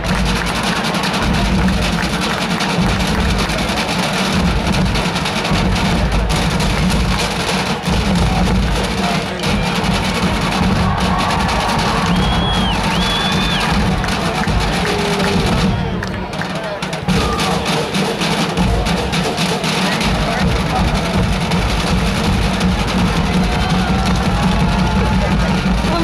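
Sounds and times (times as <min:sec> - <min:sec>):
crowd noise: 0:00.0 - 0:26.0
marching band playing: 0:00.0 - 0:26.0.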